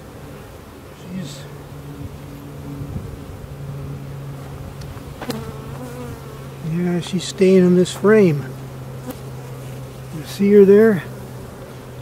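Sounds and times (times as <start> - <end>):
honey bees humming: 0.0 - 12.0.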